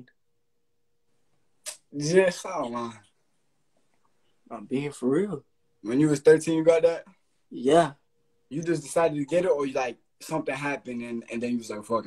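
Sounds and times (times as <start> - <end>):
men talking: 1.7 - 3.2, 4.5 - 12.0.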